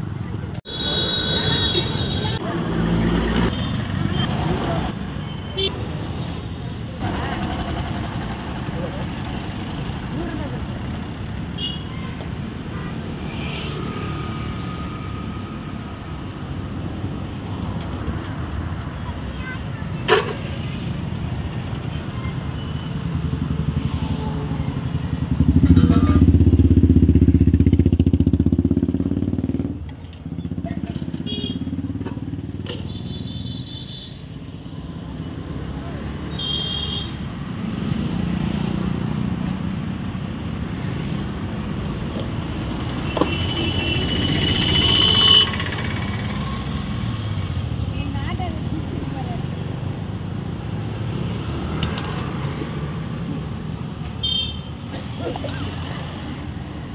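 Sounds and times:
steady traffic noise: 0:00.0 - 0:56.9.

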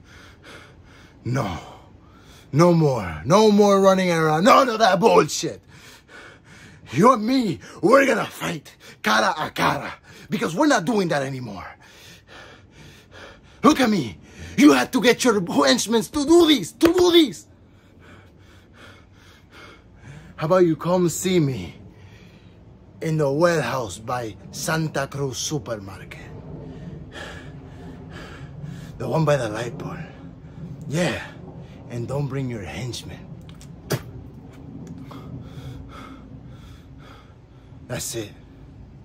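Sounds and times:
man breathing quickly: 0:00.0 - 0:02.6, 0:05.6 - 0:07.0, 0:11.7 - 0:14.6, 0:17.4 - 0:20.4, 0:21.8 - 0:23.0, 0:26.3 - 0:29.0, 0:34.6 - 0:39.0
faint low hum: 0:00.0 - 0:39.0
man speaking: 0:02.5 - 0:05.6, 0:06.9 - 0:11.7, 0:13.6 - 0:17.4.

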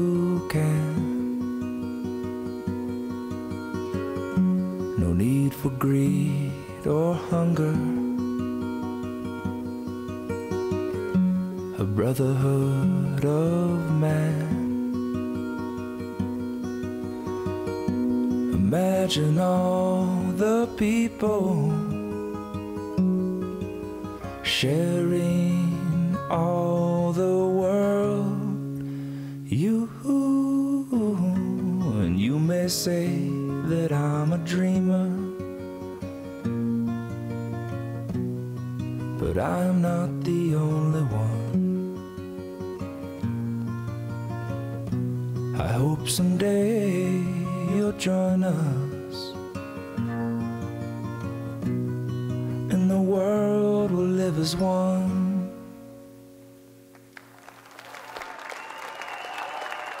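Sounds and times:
person singing wordless ooh: 0:00.0 - 0:01.4, 0:05.0 - 0:08.3, 0:11.8 - 0:14.8, 0:18.6 - 0:22.1, 0:24.4 - 0:35.4, 0:39.2 - 0:41.6, 0:45.5 - 0:49.4, 0:52.6 - 0:55.6
acoustic guitar: 0:00.0 - 0:58.0
audience applause: 0:57.0 - 1:00.0.

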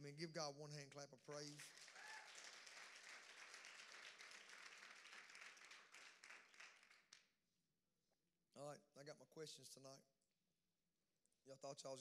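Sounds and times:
congregation applauding: 0:01.1 - 0:07.3.

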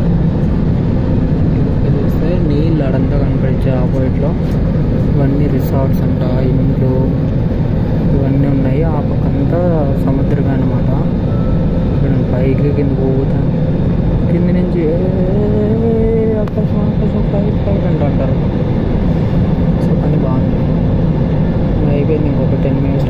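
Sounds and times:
jet cabin engine and airflow drone: 0:00.0 - 0:23.0
voices in the cabin: 0:00.3 - 0:23.0.

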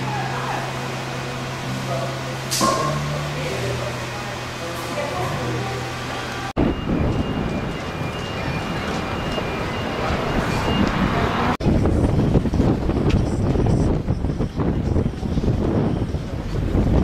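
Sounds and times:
wind buffeting microphone: 0:06.6 - 0:17.0.

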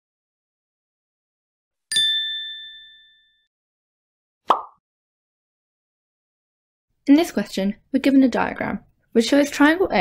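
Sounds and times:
bright bell-like ding: 0:01.9 - 0:03.5.

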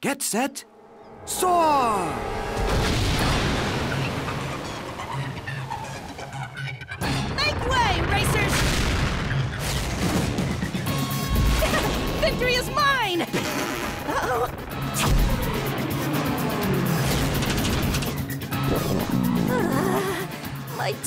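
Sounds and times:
cartoon music: 0:00.6 - 0:07.7.

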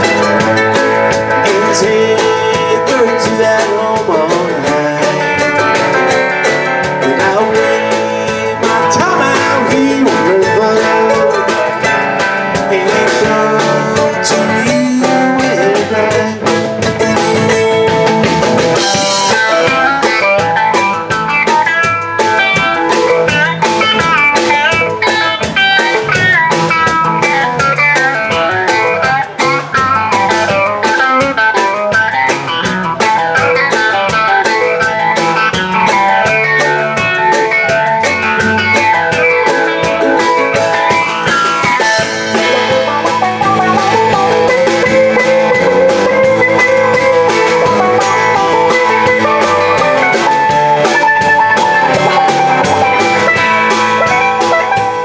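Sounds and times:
bluegrass band playing: 0:00.0 - 0:55.0
drum kit steady beat: 0:00.0 - 0:55.0
picked melody lines: 0:00.0 - 0:55.0.

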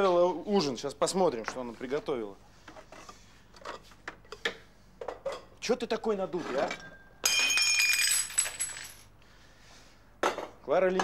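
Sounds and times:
glass jars and bottles clattering: 0:06.6 - 0:09.0.

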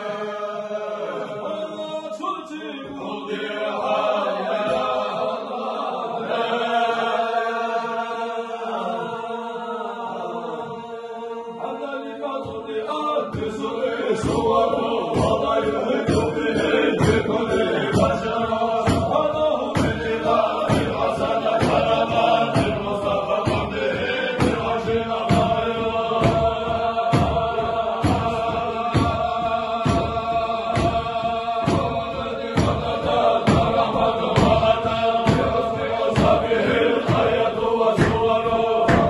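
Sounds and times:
men chanting in unison: 0:00.0 - 0:39.0
hand claps: 0:14.2 - 0:39.0.

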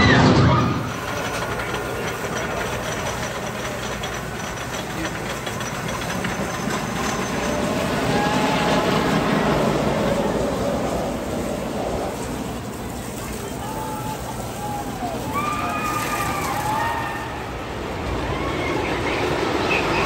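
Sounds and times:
roller coaster rumbling on track: 0:00.0 - 0:20.0.

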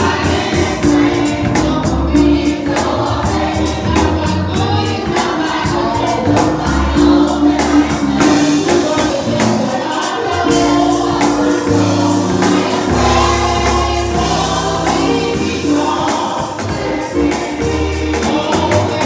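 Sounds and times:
bass line: 0:00.0 - 0:09.7, 0:10.3 - 0:16.1
gospel choir singing: 0:00.0 - 0:19.0
organ chords: 0:00.0 - 0:19.0
steady drum beat: 0:00.0 - 0:19.0.

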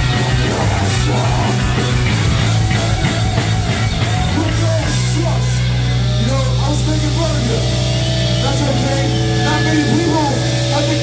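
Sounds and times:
droning electric guitars and bass: 0:00.0 - 0:11.0.

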